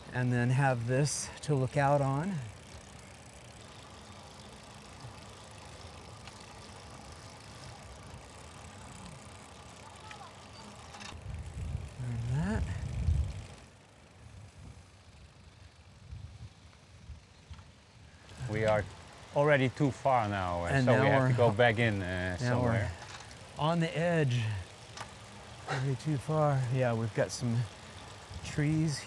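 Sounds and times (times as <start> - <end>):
bicycle rolling on asphalt: 0.0 - 29.0.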